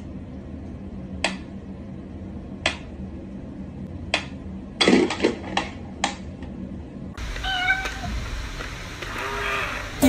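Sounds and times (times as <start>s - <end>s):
cat meowing: 7.4s - 8.1s, 9.1s - 10.0s.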